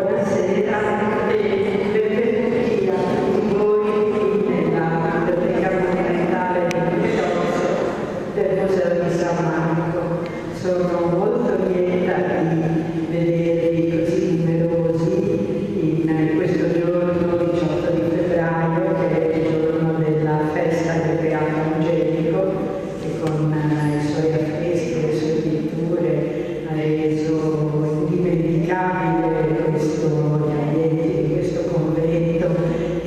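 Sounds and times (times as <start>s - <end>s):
amplified voice chanting: 0.0s - 8.4s
woman's voice through echoing microphone: 0.0s - 33.0s.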